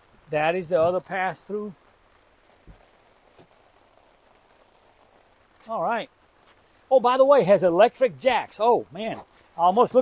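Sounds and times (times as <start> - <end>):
light rain hissing: 0.0 - 10.0.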